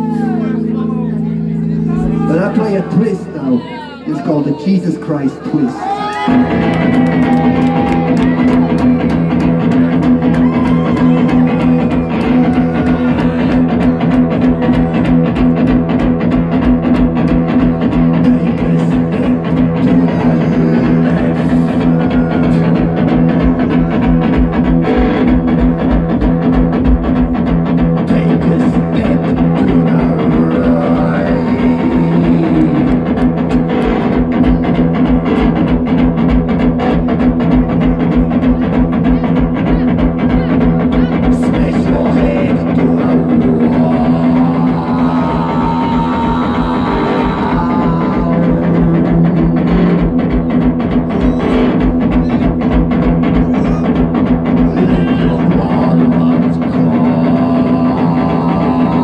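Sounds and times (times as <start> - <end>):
electric guitar playing: 0.0 - 59.0.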